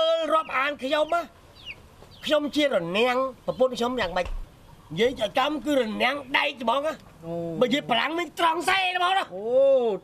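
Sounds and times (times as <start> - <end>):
man speaking: 0.0 - 1.4, 2.2 - 10.0.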